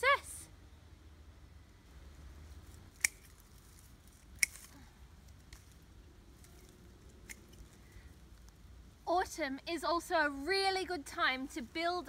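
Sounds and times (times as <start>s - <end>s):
pruning shears snipping stems: 2.9s - 3.6s, 4.2s - 4.8s.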